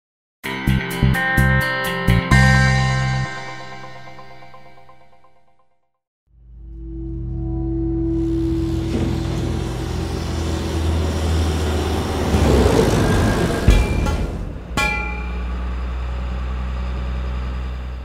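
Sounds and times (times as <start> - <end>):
heavy impact: 8.6 - 15.9
ringing hit: 13.6 - 15.7.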